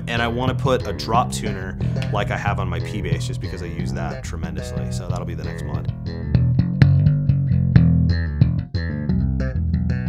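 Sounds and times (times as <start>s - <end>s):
plucked electric bass: 0.0s - 10.0s.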